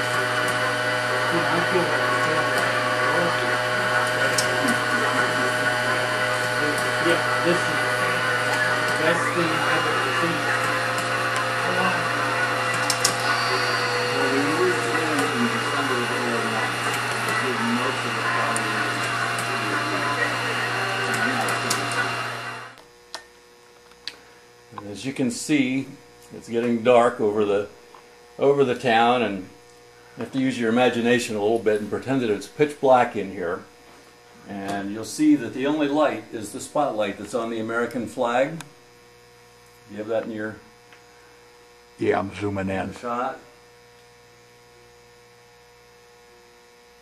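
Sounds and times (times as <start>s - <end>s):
small motors whirring: 0.0s - 22.8s
electrical hum: 0.0s - 47.0s.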